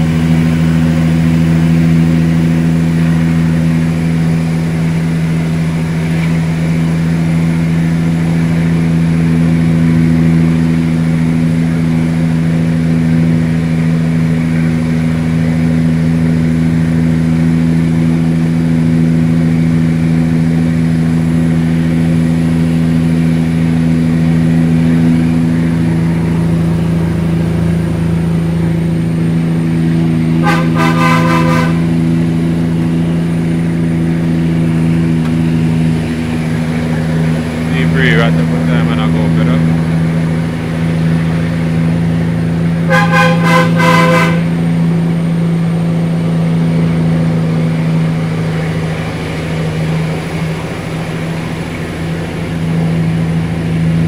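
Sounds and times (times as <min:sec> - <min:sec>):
diesel truck engine running: 0:00.0 - 0:54.0
truck horn: 0:30.4 - 0:32.2, 0:42.8 - 0:44.8.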